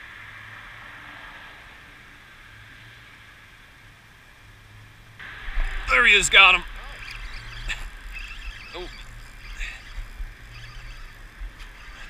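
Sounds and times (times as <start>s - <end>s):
faint outdoor noise: 0.0s - 12.0s.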